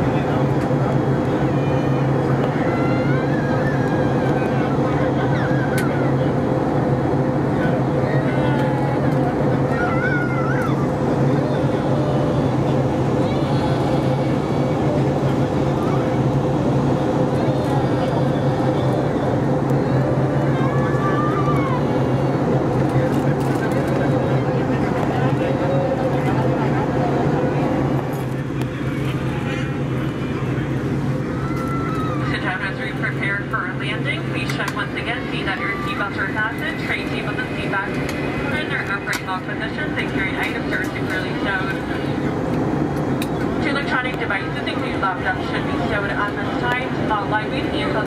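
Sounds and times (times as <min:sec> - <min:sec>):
airplane cabin drone: 0:00.0 - 0:48.0
indistinct passenger voices: 0:00.0 - 0:48.0
steady hum: 0:00.0 - 0:48.0.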